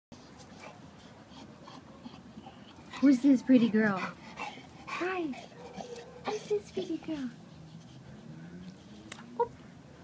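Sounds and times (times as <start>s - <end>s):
faint dogs barking: 0.6s - 10.0s.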